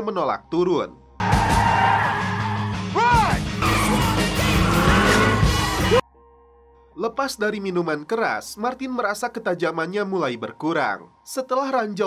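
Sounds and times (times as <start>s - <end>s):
car tires squealing and skidding: 1.2s - 2.7s
action music: 1.2s - 6.0s.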